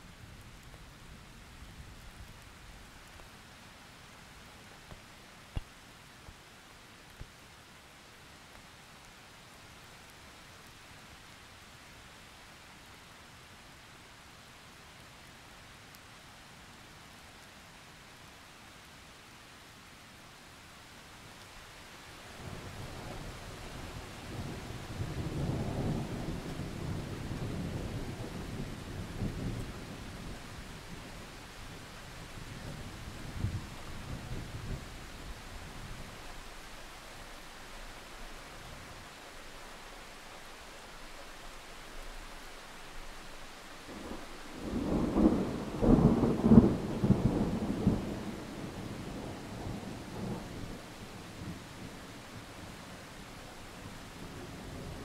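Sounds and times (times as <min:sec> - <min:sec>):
heavy rain: 0:00.0 - 0:55.0
thunder rumbling and cracking: 0:44.0 - 0:50.8.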